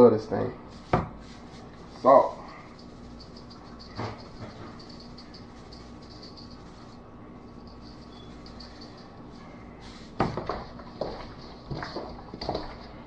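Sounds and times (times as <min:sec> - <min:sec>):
low steady hum: 0:00.0 - 0:13.0
hands seasoning chicken in bowl: 0:00.6 - 0:11.8.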